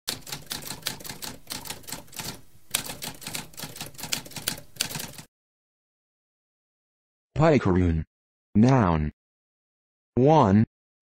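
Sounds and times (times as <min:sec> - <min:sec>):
typewriter keys clacking: 0:00.1 - 0:05.3.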